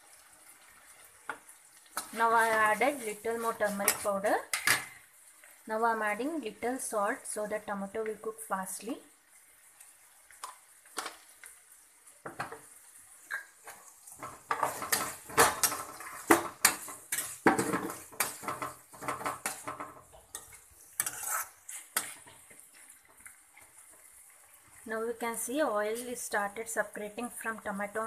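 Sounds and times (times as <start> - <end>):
food frying in oil: 0.0 - 28.0
spoon scraping a pan: 0.9 - 5.6, 12.3 - 24.8.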